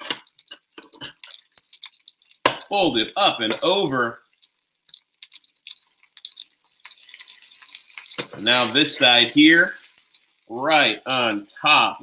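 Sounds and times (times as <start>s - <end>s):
food sizzling on a griddle: 0.0s - 12.0s
small crackling pops: 0.0s - 12.0s.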